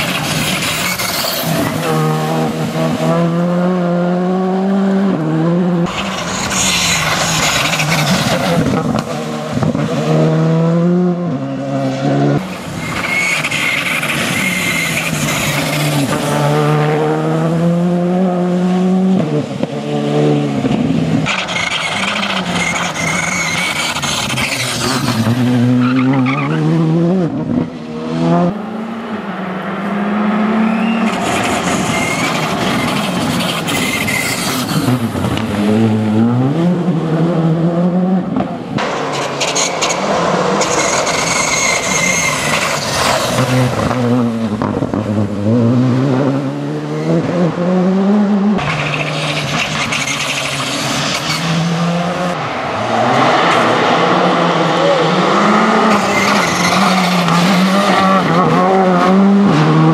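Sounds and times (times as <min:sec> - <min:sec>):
rally car engine at full throttle: 0:00.0 - 0:59.9.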